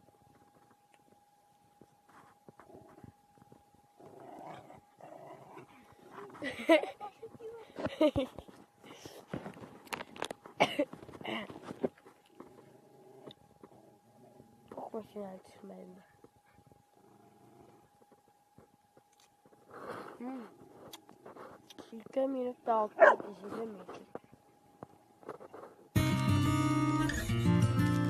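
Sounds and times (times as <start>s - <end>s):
faint steady hum: 0.0s - 28.0s
dogs growling faintly: 2.1s - 6.7s, 11.2s - 14.8s, 15.9s - 18.7s, 19.4s - 21.9s.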